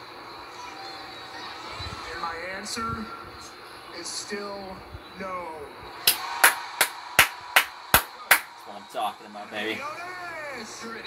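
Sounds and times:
man clapping hands: 6.1s - 8.6s.

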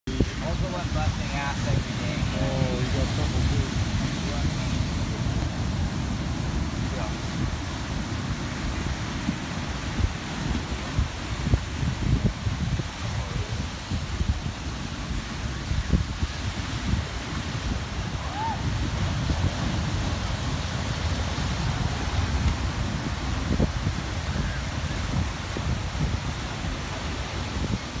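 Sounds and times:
ocean surf breaking on rocks: 0.1s - 28.0s
wind buffeting microphone: 0.1s - 28.0s.

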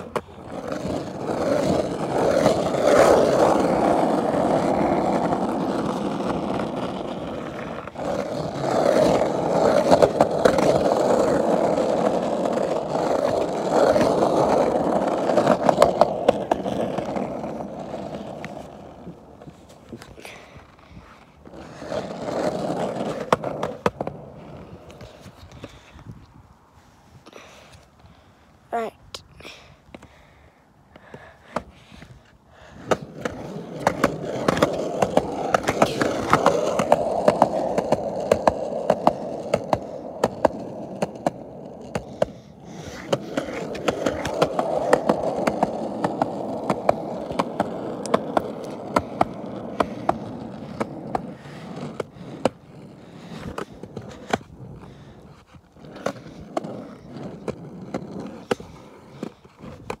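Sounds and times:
skateboard clicks and knocks: 0.0s - 26.2s, 30.9s - 60.0s
skateboard wheels clacking on joints: 0.0s - 26.2s, 30.8s - 60.0s
skateboard wheels rolling on concrete: 0.0s - 60.0s.

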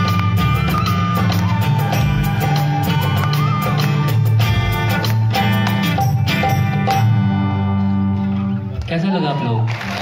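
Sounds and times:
drums: 0.0s - 7.7s
guitars and bass sustained chord: 4.5s - 8.8s.

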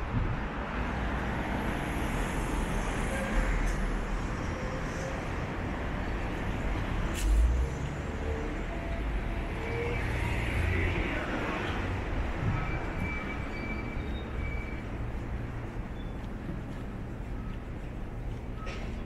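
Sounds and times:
road traffic: 0.0s - 19.0s.

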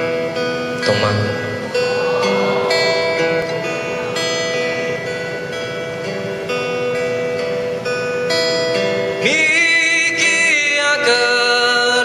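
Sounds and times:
acoustic guitar playing: 0.0s - 12.0s
man singing: 9.2s - 12.0s.

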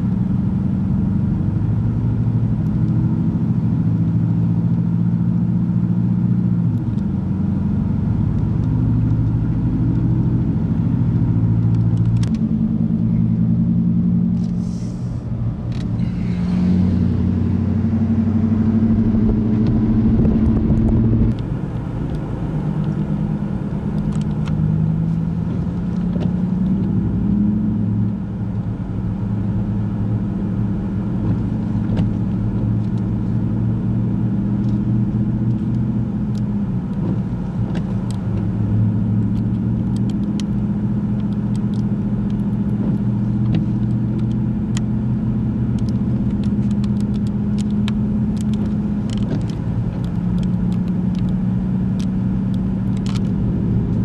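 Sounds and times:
car engine humming: 0.0s - 54.0s.

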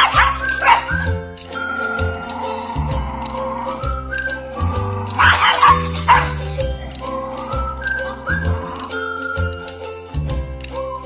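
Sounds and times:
small dog yipping: 0.0s - 2.6s, 5.2s - 6.5s
background music with bass line: 0.0s - 11.0s.

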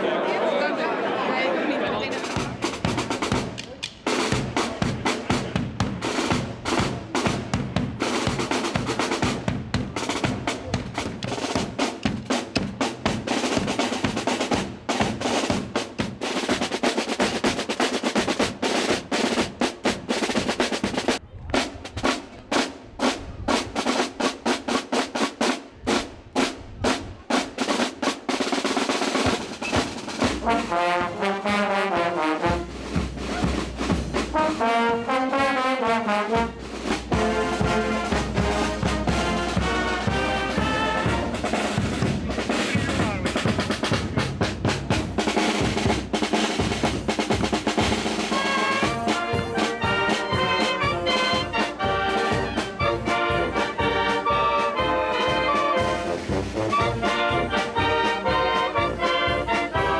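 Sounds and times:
snare and bass drum cadence: 2.2s - 59.9s
brass melody: 27.6s - 59.9s.

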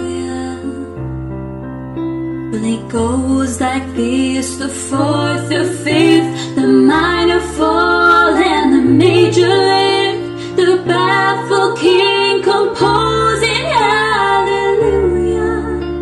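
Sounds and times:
two women singing duet: 0.0s - 1.0s, 2.5s - 16.0s
instrumental backing with bass: 0.0s - 16.0s.

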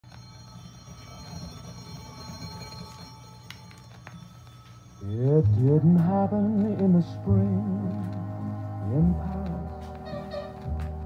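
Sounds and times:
vinyl surface noise: 0.0s - 11.0s
record stylus rumble: 5.0s - 11.0s
record clicks: 5.4s - 11.0s.

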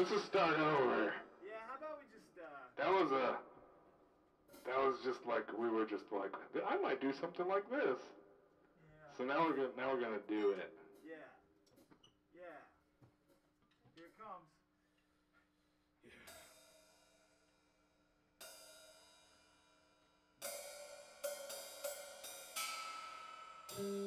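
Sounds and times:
cymbal crashes ringing: 20.4s - 24.0s.

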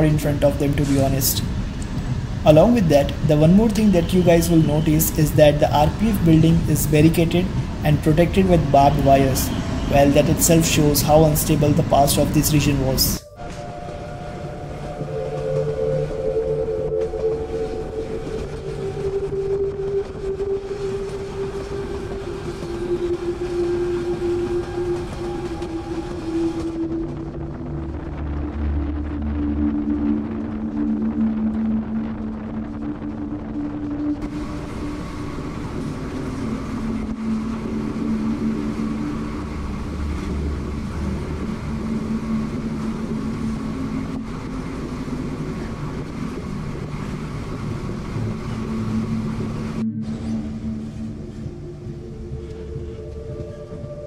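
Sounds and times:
engine whine: 0.0s - 54.0s
moving passenger train: 0.0s - 54.0s.

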